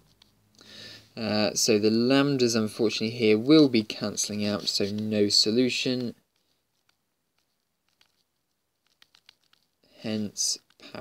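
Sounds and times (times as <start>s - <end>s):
stylus clicking on tablet screen: 5.9s - 9.8s.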